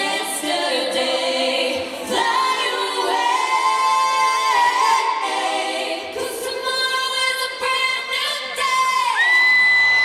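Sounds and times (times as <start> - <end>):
woman singing pop live: 6.0 - 10.0.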